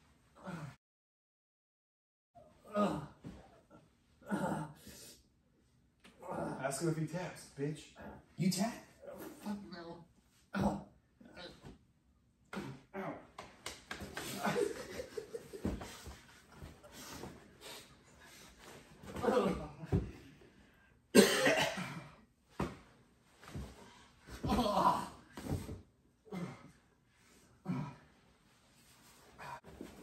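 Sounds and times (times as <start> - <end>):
men grunting: 0.4 - 0.8, 2.6 - 3.5, 4.2 - 4.8, 6.1 - 6.9, 10.5 - 11.7, 12.5 - 13.3, 19.0 - 20.3, 24.3 - 25.6, 26.3 - 26.8, 27.6 - 28.1
men coughing: 21.1 - 22.2.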